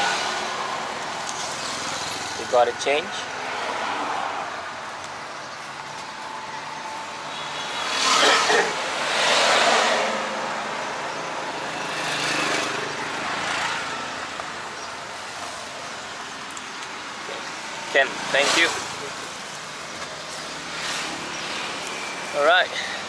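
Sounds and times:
road and engine noise: 0:00.0 - 0:23.0.

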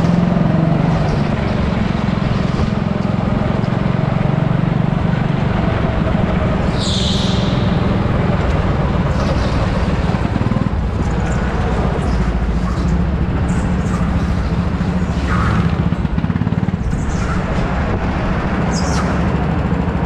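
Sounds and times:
go-kart engine droning: 0:00.0 - 0:20.0
high-pitched squeal: 0:05.5 - 0:20.0.

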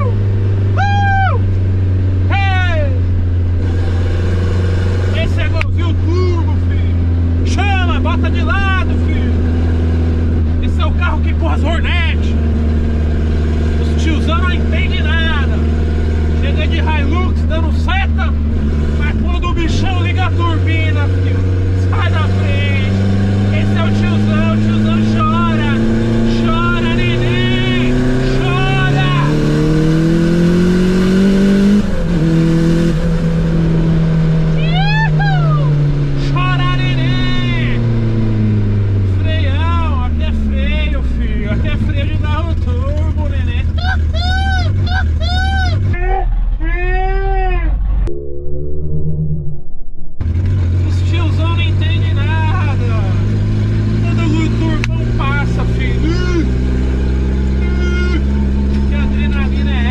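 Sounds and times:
car engine drone from inside: 0:00.0 - 0:59.9.

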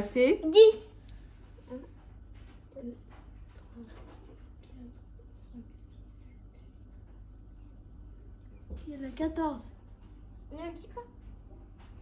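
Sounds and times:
child whispering: 0:04.6 - 0:06.7.

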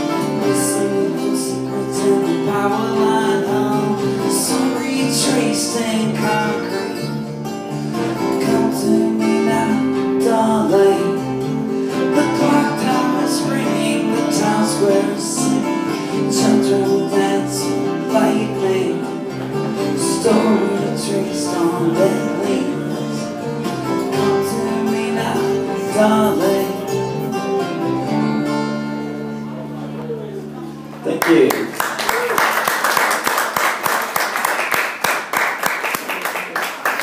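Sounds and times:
electric bass guitar: 0:00.0 - 0:31.5
acoustic guitars strummed and picked: 0:00.0 - 0:32.0.

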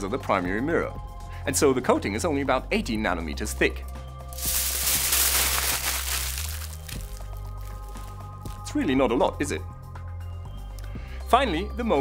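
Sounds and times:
background music: 0:00.0 - 0:12.0
aluminium foil crinkling: 0:04.4 - 0:08.6.

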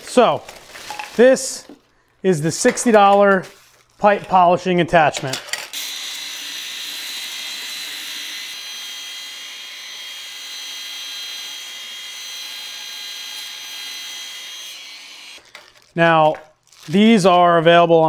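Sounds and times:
angle grinder whining: 0:05.8 - 0:15.6.

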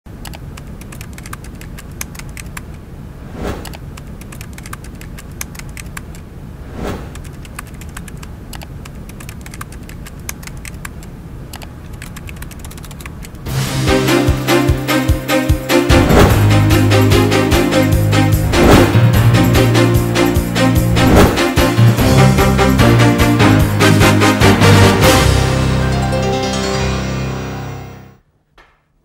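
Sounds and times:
keyboard typing clicks: 0:00.2 - 0:02.8, 0:03.6 - 0:06.2, 0:07.2 - 0:13.4
swishes: 0:03.2 - 0:03.8, 0:06.6 - 0:07.4, 0:15.9 - 0:16.9, 0:18.2 - 0:19.7, 0:20.8 - 0:21.8
theme music: 0:13.5 - 0:28.2.

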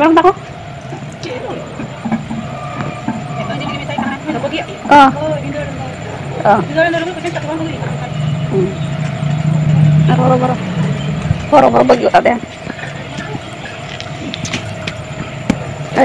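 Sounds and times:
steady low rumble: 0:00.0 - 0:16.0.

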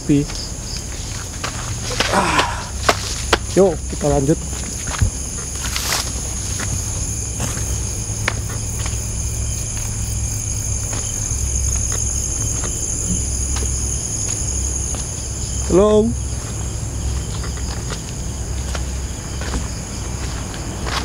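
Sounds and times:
crickets chirping: 0:00.0 - 0:21.0
footsteps on dirt path: 0:00.1 - 0:21.0
twigs and leaves snapping: 0:00.8 - 0:10.0
low rumble: 0:02.6 - 0:21.0.

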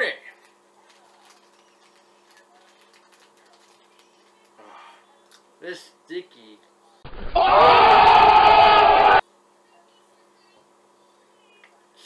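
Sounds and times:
plastic bag crinkling: 0:00.4 - 0:04.6.

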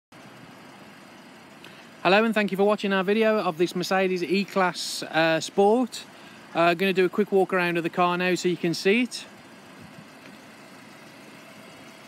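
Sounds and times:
traffic hum: 0:00.2 - 0:12.0.

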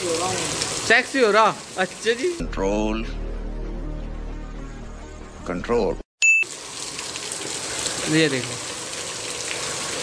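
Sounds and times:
heavy rain pouring: 0:00.0 - 0:02.4, 0:06.5 - 0:10.0
man speaking: 0:00.0 - 0:03.4, 0:05.4 - 0:06.0.

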